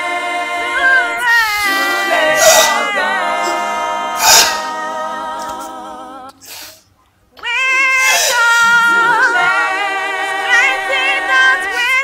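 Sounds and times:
woman singing long notes: 0:00.8 - 0:04.8, 0:07.4 - 0:09.7
breath: 0:06.4 - 0:06.9.

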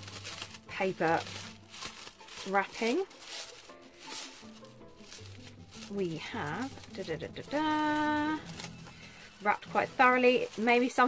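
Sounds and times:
faint tune: 0:00.0 - 0:11.0
paper wrapping rustling: 0:00.0 - 0:11.0.

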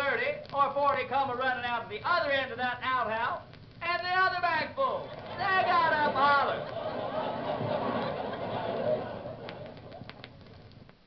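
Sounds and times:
audience laughter: 0:05.0 - 0:10.4
record clicks: 0:09.4 - 0:11.0.

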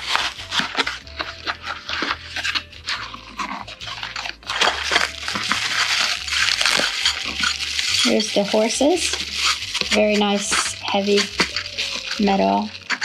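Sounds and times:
bubble-wrap bag crinkling: 0:00.0 - 0:13.0
cardboard box opening: 0:00.0 - 0:13.0.

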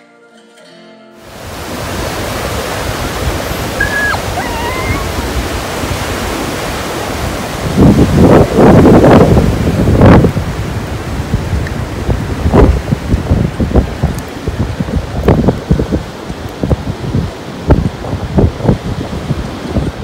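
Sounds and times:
sea surf breaking on a beach: 0:01.2 - 0:20.0
wind buffeting the microphone: 0:01.3 - 0:20.0.

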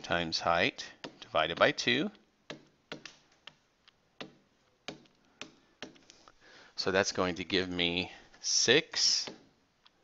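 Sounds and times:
stylus tapping on tablet: 0:01.0 - 0:06.2.

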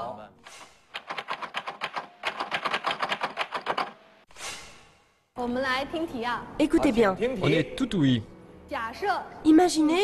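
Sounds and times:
rapid sharp clicks: 0:00.9 - 0:04.0
short whoosh: 0:04.3 - 0:05.2.

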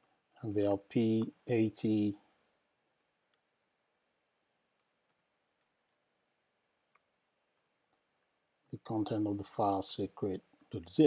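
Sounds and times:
person speaking: 0:00.3 - 0:02.3, 0:08.7 - 0:11.0.

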